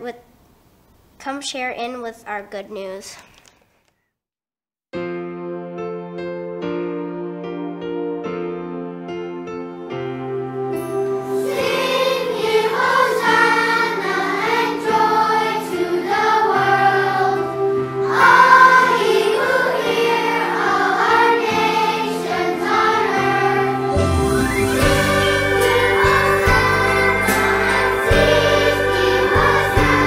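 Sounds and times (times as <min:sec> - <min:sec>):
keyboard holding chords: 0:05.0 - 0:30.0
children's choir singing: 0:11.3 - 0:30.0.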